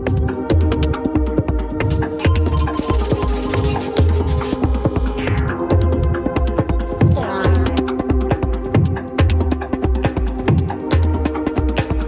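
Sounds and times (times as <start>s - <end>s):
sharp clicking percussion: 1.8s - 4.8s.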